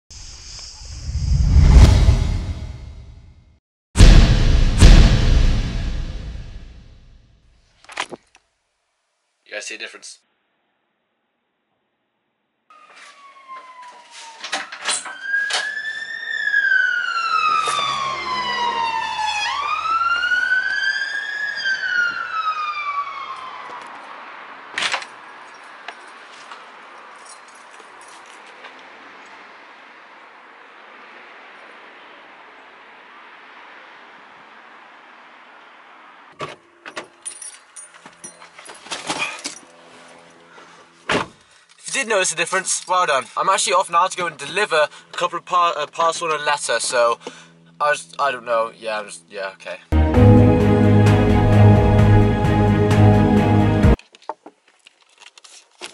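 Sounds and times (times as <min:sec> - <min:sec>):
siren wailing: 0:12.7 - 0:24.3.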